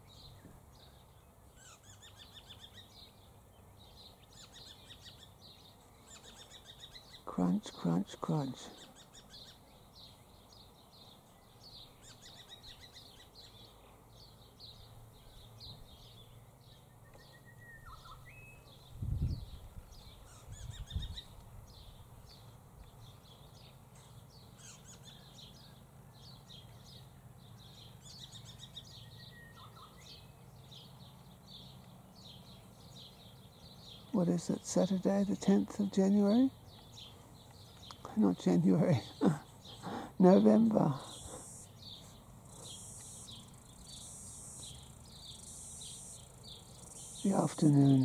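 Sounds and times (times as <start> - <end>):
small birds chirping: 0.0 - 48.0.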